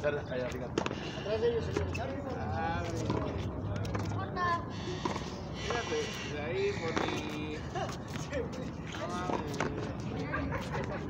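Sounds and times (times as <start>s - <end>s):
men talking and calling out: 0.0s - 11.0s.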